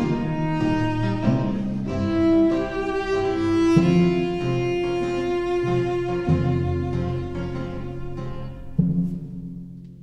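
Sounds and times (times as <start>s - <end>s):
slow orchestral string music: 0.0s - 10.0s.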